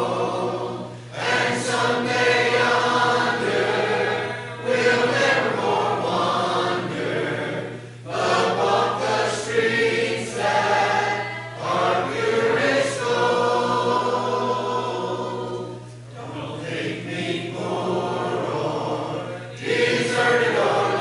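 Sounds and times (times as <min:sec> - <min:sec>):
congregation singing a hymn: 0:00.0 - 0:21.0.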